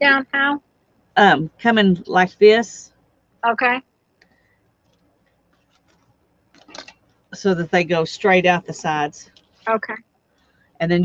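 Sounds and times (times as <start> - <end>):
paper rustling: 4.9 - 7.0.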